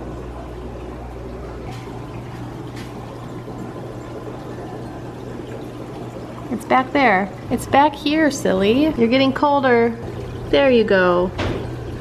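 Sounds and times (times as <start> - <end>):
running and trickling water: 0.0 - 12.0.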